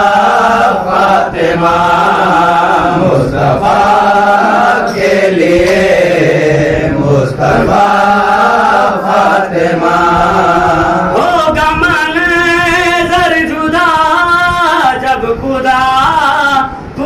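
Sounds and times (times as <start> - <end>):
steady low hum: 0.0 - 17.0
wordless vocal chanting: 0.0 - 17.0.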